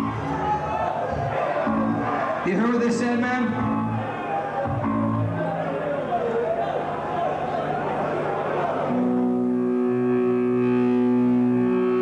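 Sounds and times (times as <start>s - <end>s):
electric guitar droning note: 8.9s - 12.0s.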